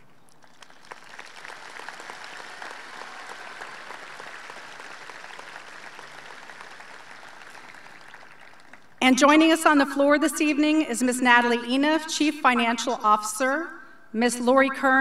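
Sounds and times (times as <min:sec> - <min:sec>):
distant audience clapping: 0:00.3 - 0:09.0.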